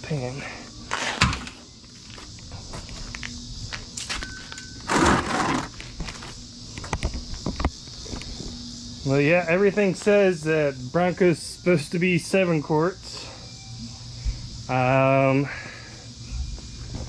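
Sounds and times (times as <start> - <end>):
crickets chirring: 0.0 - 17.0
plastic pan scraping on concrete: 4.9 - 5.8.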